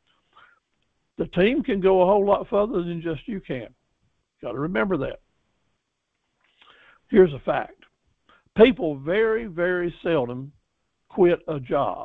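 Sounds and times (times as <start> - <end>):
faint breath: 0.1 - 0.7, 6.4 - 7.1
man's voice: 1.2 - 3.7, 4.4 - 5.2, 7.1 - 7.8, 8.6 - 10.5, 11.2 - 12.0.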